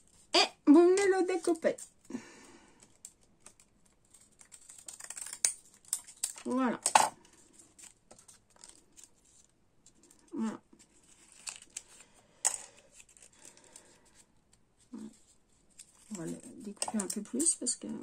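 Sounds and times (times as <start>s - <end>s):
paper rustling: 1.1s - 6.5s, 7.2s - 17.4s.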